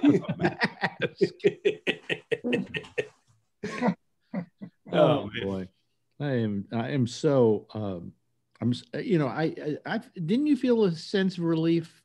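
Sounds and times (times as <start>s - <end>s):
group laughing: 0.0s - 4.9s
person speaking: 0.0s - 11.0s.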